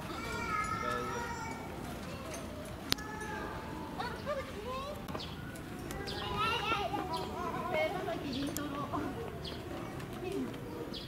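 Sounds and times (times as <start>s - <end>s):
chatter of voices: 0.0s - 11.0s
children talking and calling: 0.0s - 11.0s.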